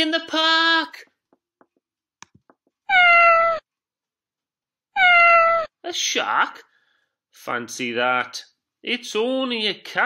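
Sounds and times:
cat meow: 0:02.9 - 0:03.7, 0:05.0 - 0:05.8.

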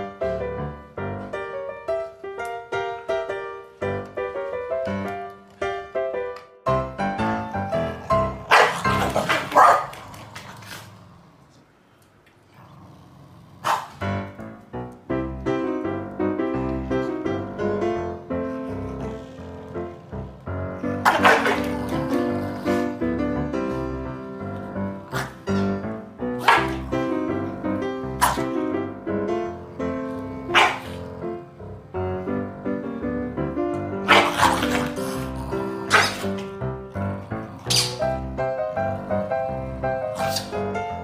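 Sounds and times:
piano background music: 0:00.0 - 0:10.2, 0:13.6 - 0:41.0
dog barking: 0:08.5 - 0:10.0, 0:13.6 - 0:14.0, 0:21.0 - 0:21.8, 0:26.4 - 0:26.9, 0:28.2 - 0:28.5, 0:30.5 - 0:31.0, 0:34.0 - 0:34.8, 0:35.9 - 0:36.3.

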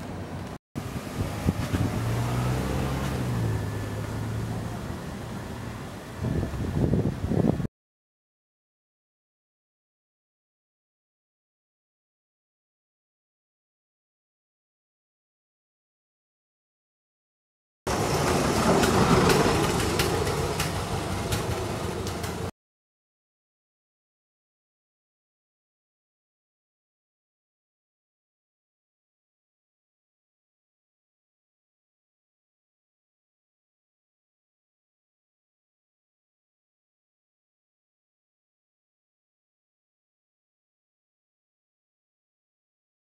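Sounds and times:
street noise: 0:00.0 - 0:07.7, 0:17.9 - 0:22.5
vehicle engine passing by: 0:00.8 - 0:06.9, 0:17.9 - 0:22.5.

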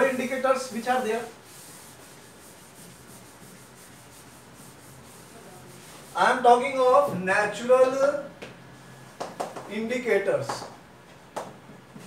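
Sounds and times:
duster rubbing on chalkboard: 0:00.0 - 0:06.7.

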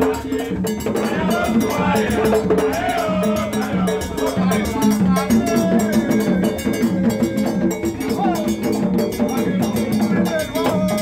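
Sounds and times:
fast dense percussion: 0:00.0 - 0:11.0
voices: 0:00.0 - 0:11.0
cowbell-like metal clank: 0:00.1 - 0:11.0.

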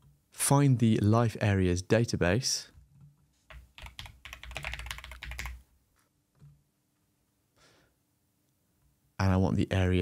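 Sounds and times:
typing on computer keyboard: 0:03.5 - 0:05.6.

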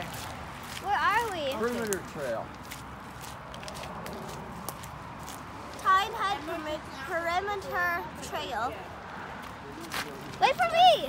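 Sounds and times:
footsteps on forest trail: 0:00.0 - 0:05.9.

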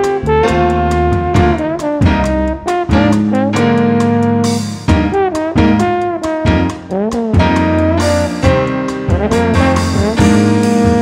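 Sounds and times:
jazz quartet playing: 0:00.0 - 0:11.0.

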